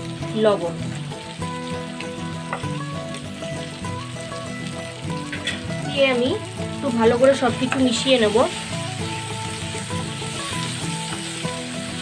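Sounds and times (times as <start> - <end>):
instrumental background music: 0.0 - 12.0
vegetables sizzling in oil: 0.0 - 12.0.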